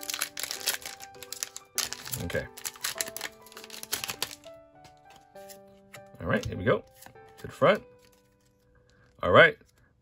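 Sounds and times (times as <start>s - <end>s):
foil wrapper crinkling: 0.0s - 5.6s, 6.9s - 9.2s
cards being shuffled: 0.0s - 9.8s.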